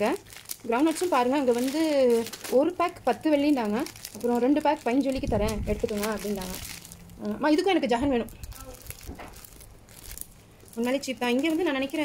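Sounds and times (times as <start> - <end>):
woman talking: 0.0 - 8.4, 10.8 - 12.0
plastic bag crinkling: 0.0 - 12.0.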